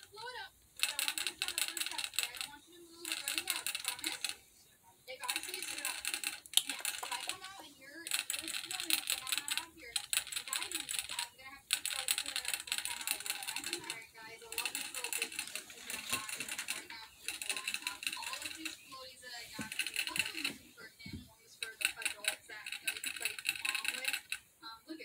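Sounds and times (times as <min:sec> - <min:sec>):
water bottle valve clicking rapidly: 0:00.0 - 0:04.4, 0:05.1 - 0:24.6.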